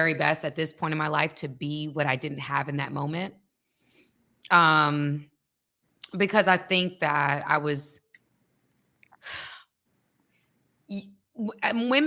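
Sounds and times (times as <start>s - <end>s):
woman's voice: 0.0s - 3.3s, 4.5s - 5.2s, 6.0s - 8.0s, 10.9s - 12.0s.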